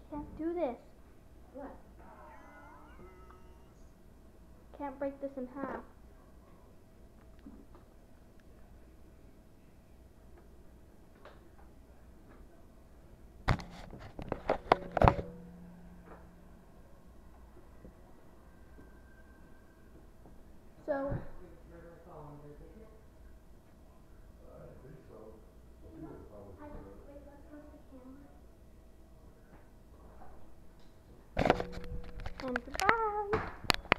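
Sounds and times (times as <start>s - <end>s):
steady pitched hum: 0.0s - 33.9s
short wavering call: 2.0s - 4.0s
sharp clicks and knocks: 13.5s - 15.4s.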